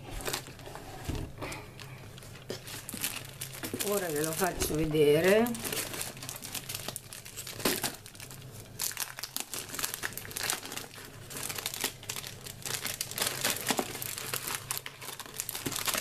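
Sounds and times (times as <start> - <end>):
plastic wrapping crinkling: 0.0 - 16.0.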